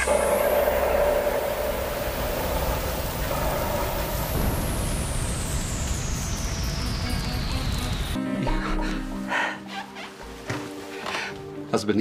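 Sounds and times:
high whistling tone sliding down: 0.0s - 8.2s
rushing fire noise: 0.0s - 8.2s.

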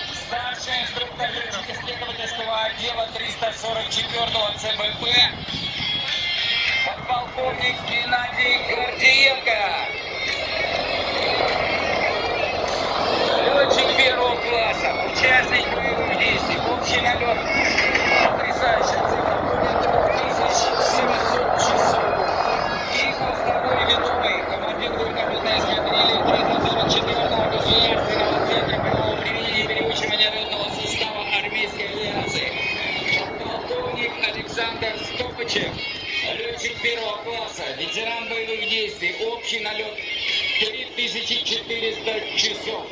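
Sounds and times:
helicopters droning overhead: 0.0s - 42.9s
voices: 0.0s - 42.9s.

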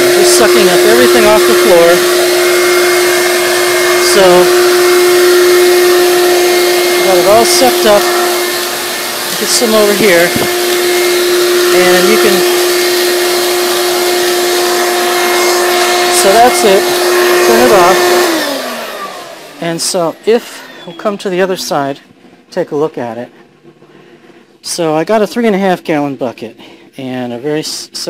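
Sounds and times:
air rushing through hose: 0.0s - 19.4s
shop vac motor hum: 0.0s - 25.3s.

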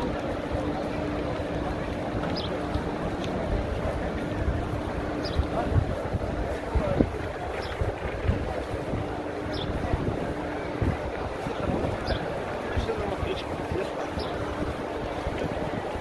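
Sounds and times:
murmur of voices: 0.0s - 16.0s
wind buffeting microphone: 0.0s - 16.0s.

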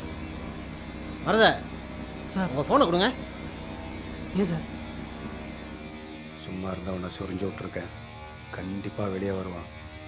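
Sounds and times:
van engine and road noise: 0.0s - 7.4s.

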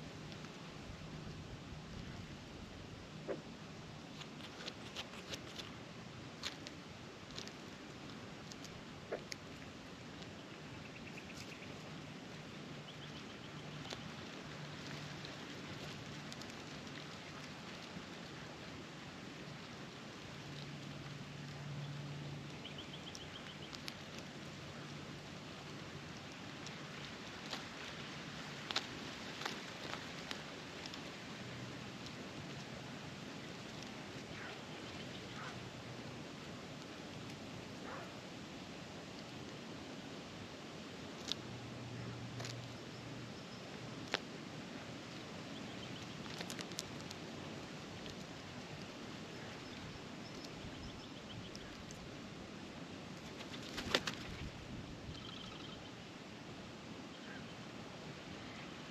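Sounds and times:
rustle of straw: 3.9s - 55.1s
birds pecking clicks: 6.4s - 11.9s, 13.0s - 18.4s, 20.3s - 24.7s, 25.6s - 31.1s, 45.6s - 52.1s, 53.2s - 54.5s, 55.1s - 55.8s.

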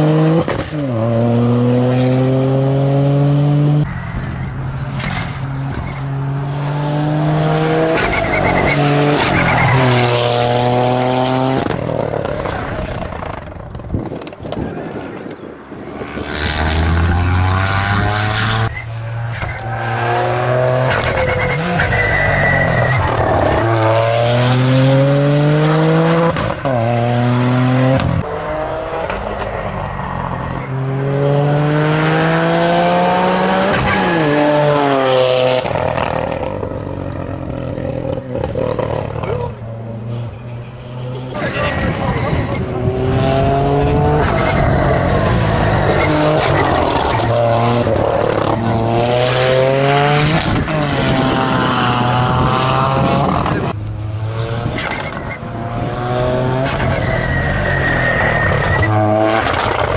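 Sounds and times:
car engine accelerating hard: 41.3s - 57.0s.

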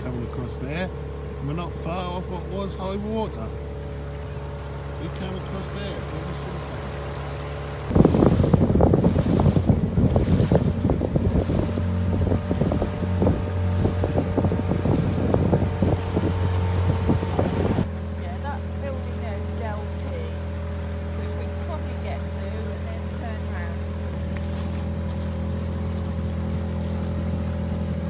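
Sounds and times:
outboard motor running: 0.0s - 28.0s
wind buffeting microphone: 3.8s - 18.6s.

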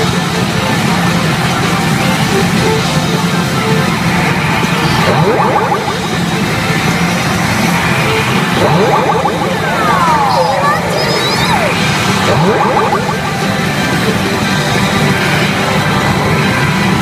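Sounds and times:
game machine music: 0.0s - 16.7s
machine voice: 4.8s - 7.0s, 7.7s - 14.1s.

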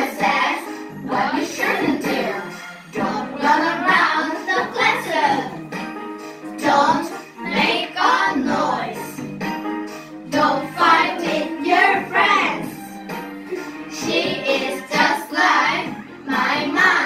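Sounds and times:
children singing: 0.0s - 5.7s, 6.6s - 9.1s, 10.3s - 17.0s
instrumental accompaniment: 0.0s - 17.0s.

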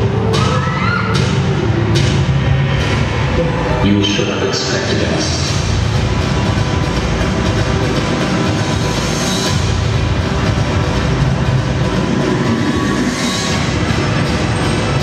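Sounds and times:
loud dance music: 0.0s - 15.0s.

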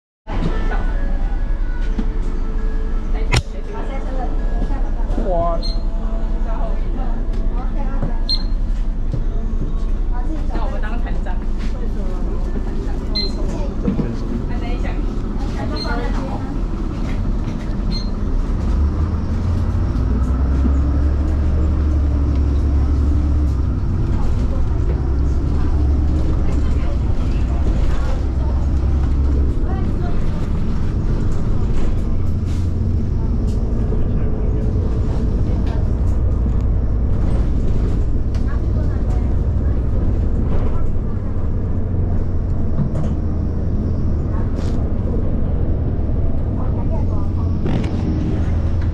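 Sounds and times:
bus engine and road rumble: 0.2s - 48.9s
clicks and rattles in bus cabin: 15.3s - 34.0s, 34.7s - 43.5s, 46.5s - 48.9s.

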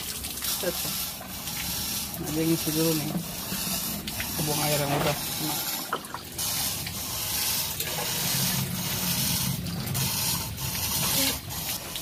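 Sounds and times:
water pouring into barrel: 0.0s - 12.0s.

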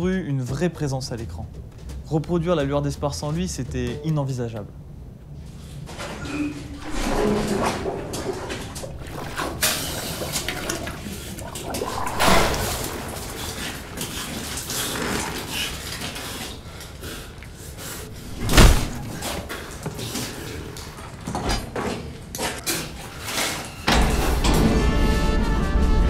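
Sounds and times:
water splashing: 6.7s - 16.0s, 18.0s - 19.8s.

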